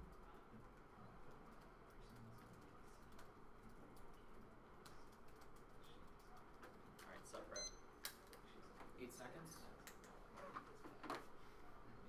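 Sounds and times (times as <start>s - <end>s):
laptop keyboard typing: 0.0s - 7.2s.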